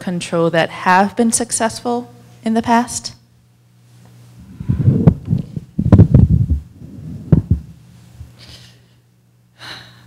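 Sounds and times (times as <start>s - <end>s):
electrical hum: 0.0s - 10.0s
microphone handling thumps: 4.4s - 8.4s.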